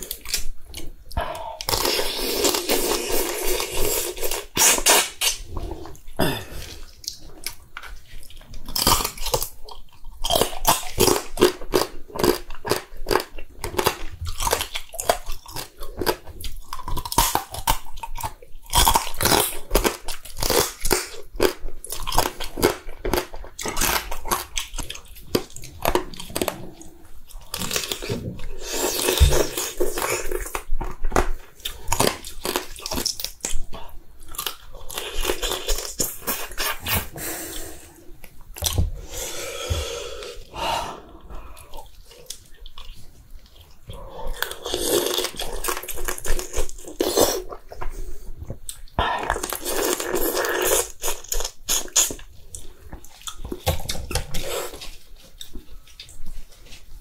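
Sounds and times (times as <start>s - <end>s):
chewing crab with wet crunching: 6.6s - 36.8s, 41.5s - 48.0s.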